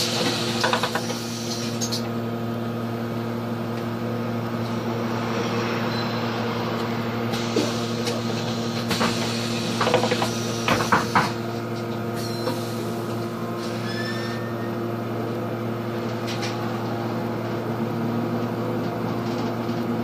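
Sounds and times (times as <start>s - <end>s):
bus idling hum: 0.0s - 20.0s.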